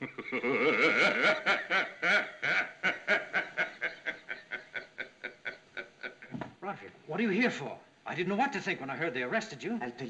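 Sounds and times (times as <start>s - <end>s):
man chuckling: 0.0s - 6.4s.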